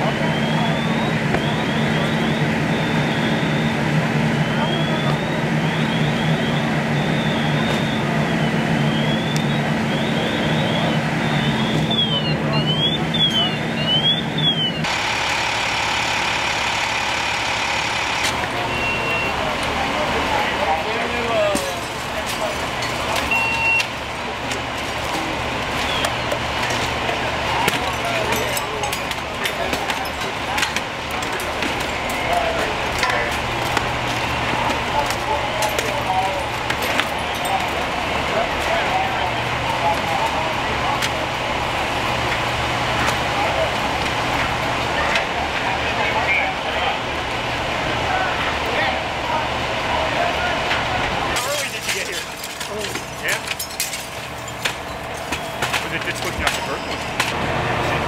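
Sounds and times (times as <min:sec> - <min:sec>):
fire engines humming: 0:00.0 - 0:58.0
short beeps: 0:04.6 - 0:14.9, 0:18.7 - 0:19.4, 0:23.3 - 0:23.9.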